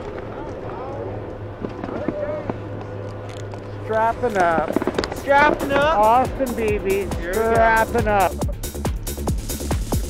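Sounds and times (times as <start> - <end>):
faint voices: 0.0 - 8.6.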